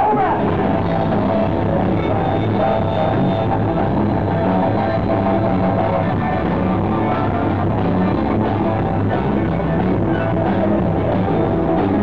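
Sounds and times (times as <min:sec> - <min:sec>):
live blues band playing: 0:00.1 - 0:12.0.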